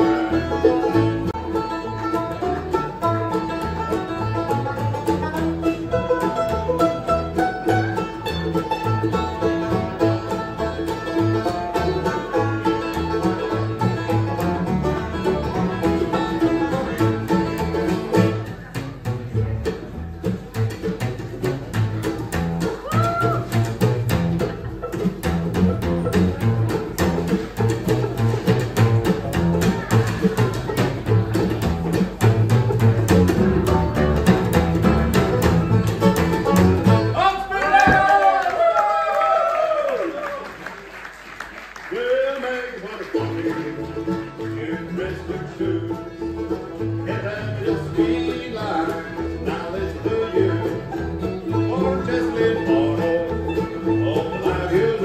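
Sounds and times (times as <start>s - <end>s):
acoustic guitar: 0.0s - 38.2s, 40.6s - 55.0s
plucked upright bass: 0.0s - 38.2s, 42.7s - 55.0s
mandolin: 0.0s - 38.8s, 40.6s - 55.0s
banjo: 0.0s - 55.0s.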